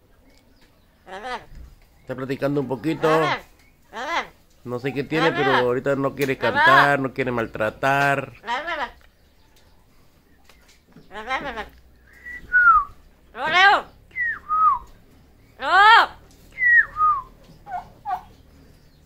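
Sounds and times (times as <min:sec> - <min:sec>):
parrot calling: 0:01.0 - 0:01.6, 0:02.7 - 0:05.7, 0:08.4 - 0:09.1, 0:11.0 - 0:18.5
parrot whistling: 0:12.1 - 0:13.0, 0:14.1 - 0:14.9, 0:16.5 - 0:18.3.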